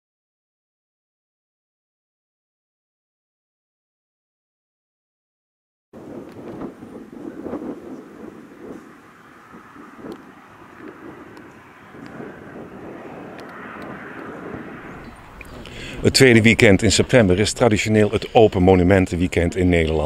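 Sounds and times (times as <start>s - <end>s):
low uneven rumble: 6.0s - 20.0s
faint clicks: 9.5s - 12.3s, 13.3s - 14.4s.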